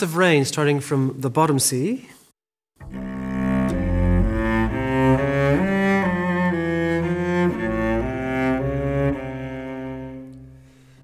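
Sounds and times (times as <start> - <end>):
cello bowed low notes: 2.8 - 11.0.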